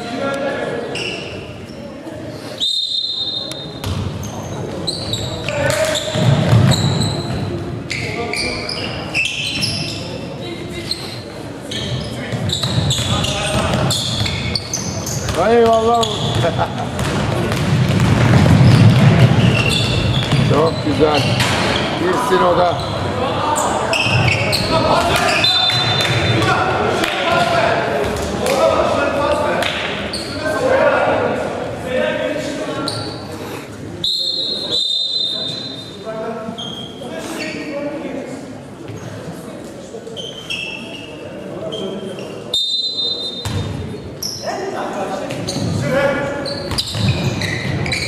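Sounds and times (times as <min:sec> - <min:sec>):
basketball bouncing on hardwood: 0:16.3 - 0:20.5.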